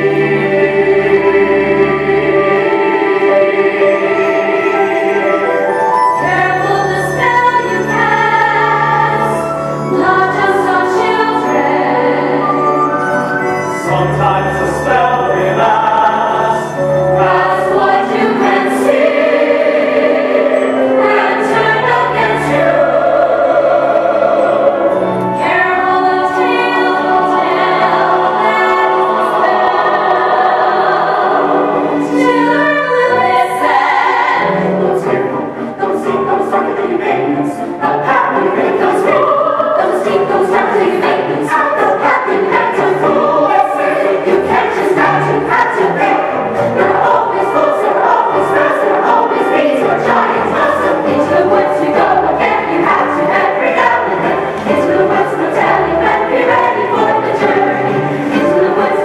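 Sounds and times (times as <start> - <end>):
ensemble singing in chorus: 0.0 - 59.0
instrumental accompaniment: 0.0 - 59.0.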